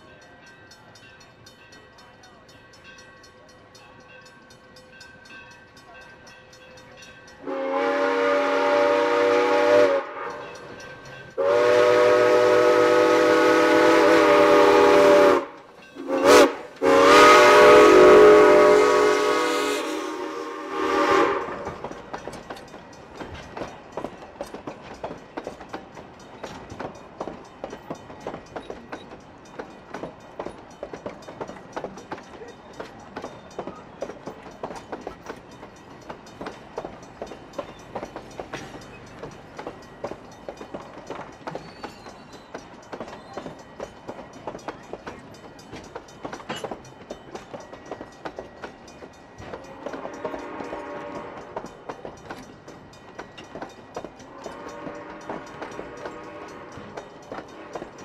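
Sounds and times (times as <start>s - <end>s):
train wheels clicking over rail joints: 4.0s - 58.0s
steam locomotive whistle blasts: 7.4s - 10.6s, 11.4s - 21.8s, 49.7s - 51.7s, 54.3s - 58.0s.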